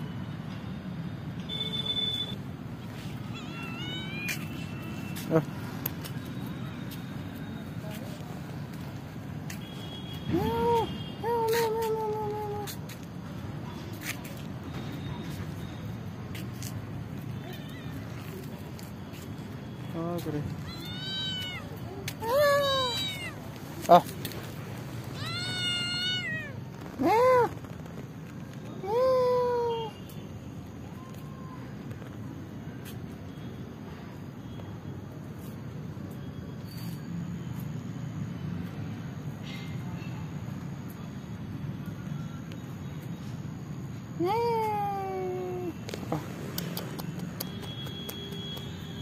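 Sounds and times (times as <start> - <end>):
kitten meowing: 3.0 - 5.1, 20.6 - 23.5, 25.1 - 26.6.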